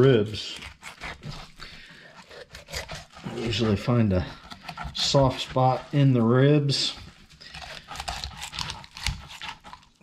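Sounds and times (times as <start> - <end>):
knife crunching through fish bones: 0.0 - 5.9, 7.0 - 10.0.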